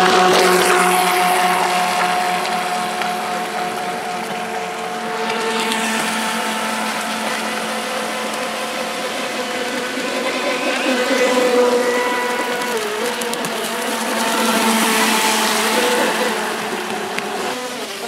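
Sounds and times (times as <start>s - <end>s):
electric motor high whine: 0.0s - 18.0s
hull hissing through water: 5.4s - 18.0s.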